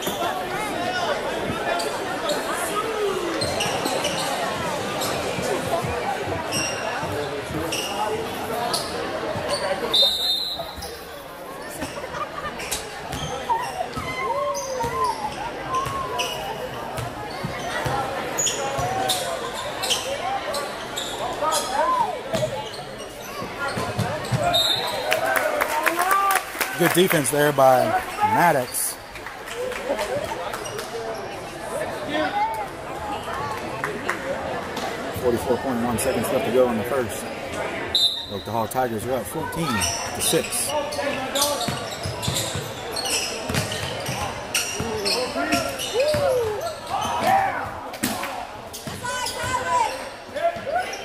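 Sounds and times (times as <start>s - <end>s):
crowd chatter: 0.0s - 51.0s
sneaker squeaks on hardwood floor: 3.4s - 8.1s, 8.7s - 12.0s, 12.6s - 25.0s, 39.7s - 47.5s.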